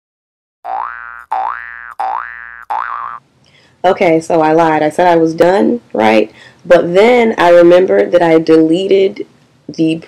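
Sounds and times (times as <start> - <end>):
cartoon boing sound effect: 0.7 - 3.2
woman talking: 3.8 - 10.0.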